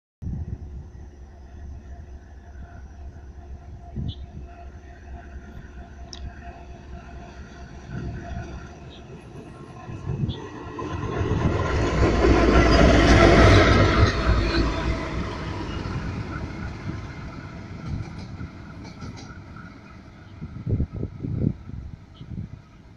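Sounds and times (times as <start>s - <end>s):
diesel locomotive passing: 0.2s - 22.9s.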